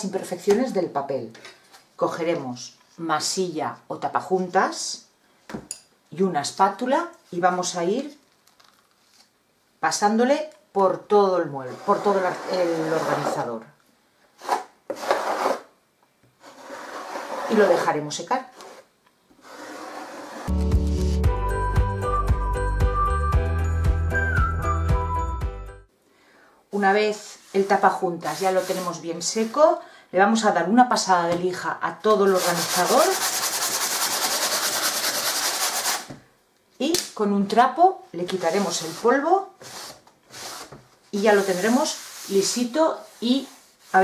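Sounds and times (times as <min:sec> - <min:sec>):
spatula scraping filler paste: 0:14.4 - 0:15.7
sanding block rubbing filler: 0:32.3 - 0:36.1.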